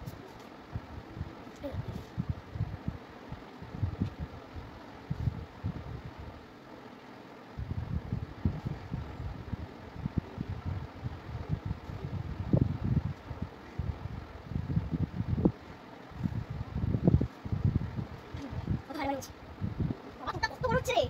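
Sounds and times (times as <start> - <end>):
low irregular rumbling: 0.0 - 21.0.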